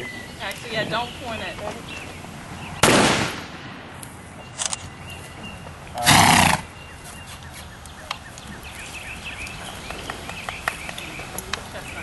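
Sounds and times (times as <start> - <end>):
gunshot: 2.8 - 3.9
horse whinnying: 6.0 - 6.7.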